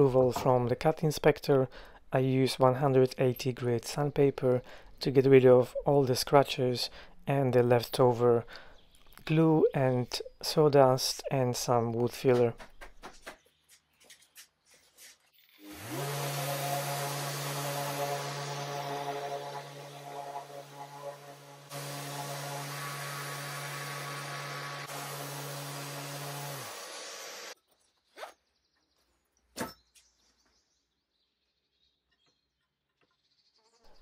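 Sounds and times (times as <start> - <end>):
electric sander on wood: 15.4 - 27.6.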